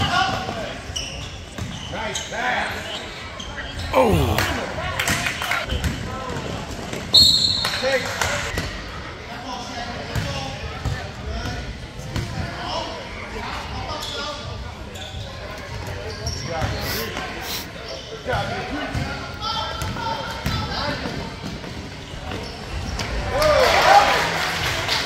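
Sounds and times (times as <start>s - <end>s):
spectators chattering: 3.9s - 4.8s, 16.8s - 17.8s.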